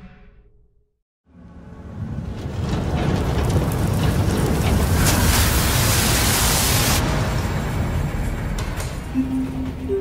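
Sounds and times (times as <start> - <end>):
icy wind blowing snow: 2.0 - 7.5.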